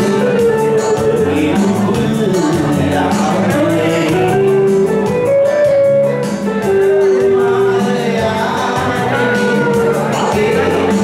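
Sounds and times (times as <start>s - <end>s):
man singing long notes: 0.0s - 5.2s, 6.8s - 11.0s
keyboard accompaniment: 0.0s - 11.0s
programmed drum beat: 0.0s - 11.0s.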